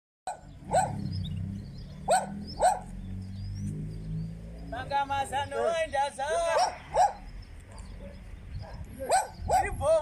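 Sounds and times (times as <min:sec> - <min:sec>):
dog barking: 0:00.3 - 0:01.1, 0:01.9 - 0:03.0, 0:06.3 - 0:09.8.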